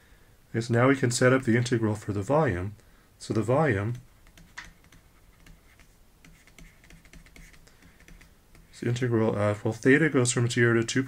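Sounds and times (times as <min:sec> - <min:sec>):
stylus tapping on tablet: 0:03.9 - 0:08.8.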